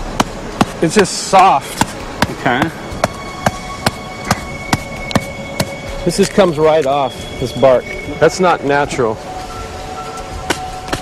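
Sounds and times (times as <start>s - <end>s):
ticking beat: 1.7s - 11.0s
sustained held note: 2.4s - 11.0s.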